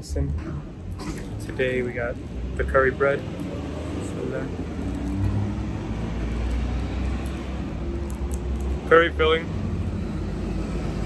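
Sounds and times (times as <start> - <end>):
street traffic rumble: 0.0 - 11.0
motor vehicle running nearby: 1.1 - 11.0.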